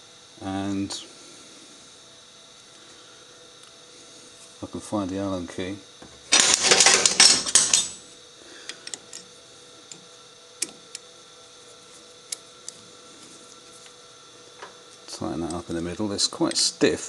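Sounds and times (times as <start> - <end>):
small metal tools clattering: 6.3 - 8.0.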